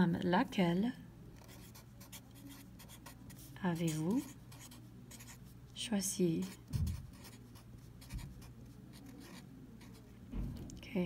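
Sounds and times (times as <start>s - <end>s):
low steady hum: 0.0s - 11.0s
pen scratching on paper: 1.4s - 5.4s, 6.4s - 10.1s.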